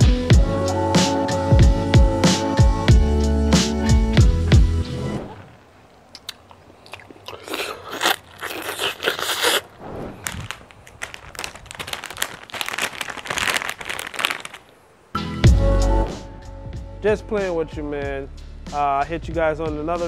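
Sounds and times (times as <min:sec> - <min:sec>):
background music: 0:00.0 - 0:05.4, 0:15.2 - 0:20.0
person biting and chewing mango: 0:06.2 - 0:14.5.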